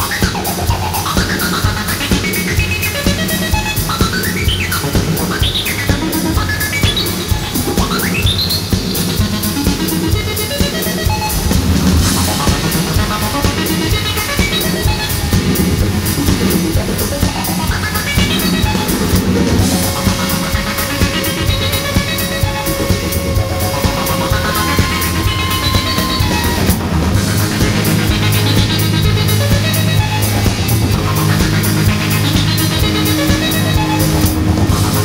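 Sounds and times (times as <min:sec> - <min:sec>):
drum kit beat: 0:00.0 - 0:35.0
electric guitar: 0:00.0 - 0:35.0.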